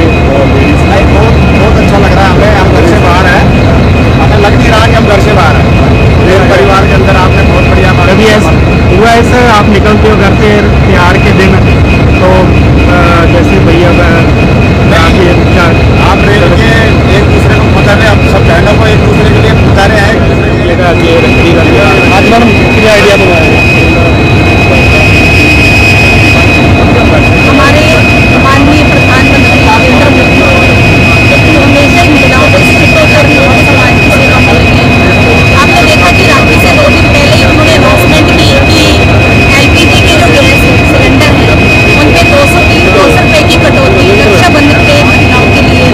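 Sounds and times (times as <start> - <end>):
high whine: 0.0 - 45.9
locomotive engine rumbling: 0.0 - 45.9
people talking: 0.0 - 45.9
woman talking: 27.1 - 45.9.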